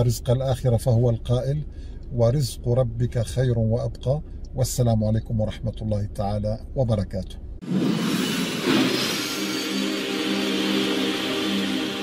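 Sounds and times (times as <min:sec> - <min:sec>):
loud whoosh: 0:07.6 - 0:12.0
sustained music tones: 0:07.6 - 0:12.0.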